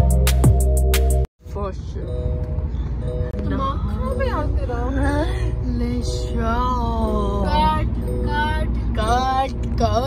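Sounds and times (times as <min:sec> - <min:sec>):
music playing: 0:00.0 - 0:08.8
road rumble inside car: 0:01.4 - 0:10.0
voices singing along: 0:03.4 - 0:10.0.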